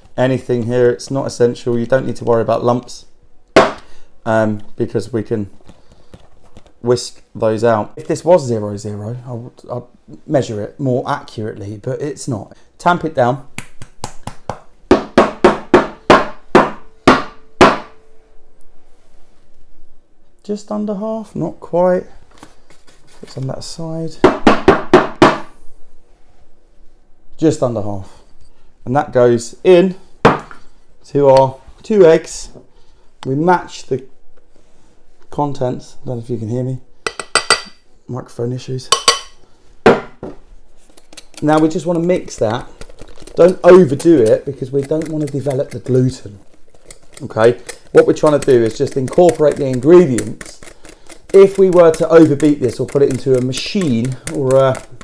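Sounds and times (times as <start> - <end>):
knocks on wooden worktop: 39.9 - 40.4.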